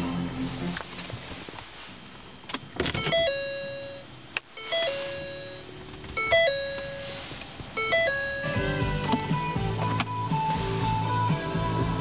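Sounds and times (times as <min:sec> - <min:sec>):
car dashboard chime: 0:02.8 - 0:11.0.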